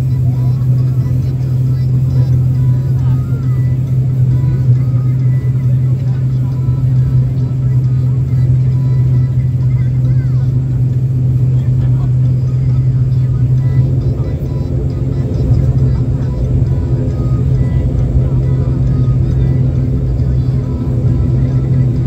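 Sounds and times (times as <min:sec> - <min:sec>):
propeller engine drone: 0:00.0 - 0:22.0.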